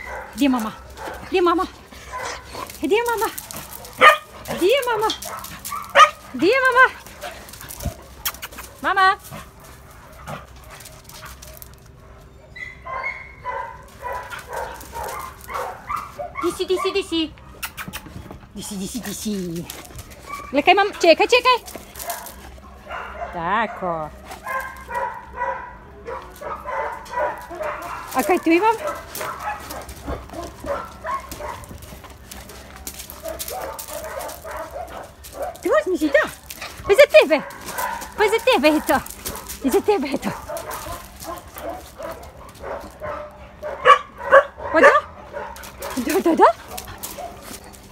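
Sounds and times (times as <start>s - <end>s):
scuffs and clicks on gravel: 0.0s - 12.0s, 13.8s - 16.3s, 18.9s - 22.7s, 24.2s - 25.2s, 26.2s - 43.8s, 45.6s - 47.9s
dog whining and yelping: 12.2s - 13.5s.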